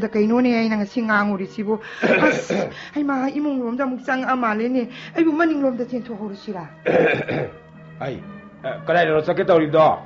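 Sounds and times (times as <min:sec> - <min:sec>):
person clearing throat: 0:02.0 - 0:02.7, 0:06.8 - 0:07.6.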